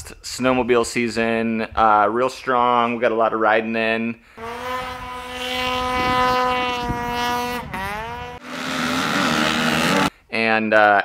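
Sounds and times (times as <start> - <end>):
high-revving snow bike engine: 4.4 - 10.1.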